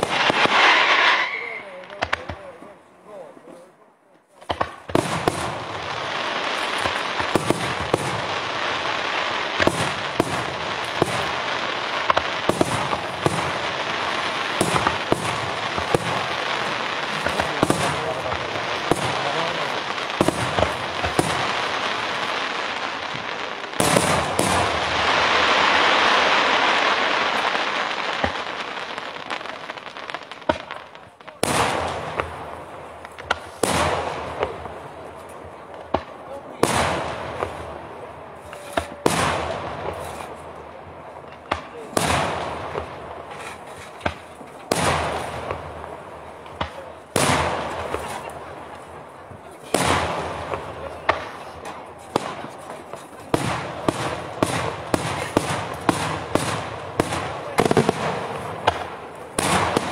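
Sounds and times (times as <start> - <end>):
fireworks crackling and banging: 0.0 - 59.9.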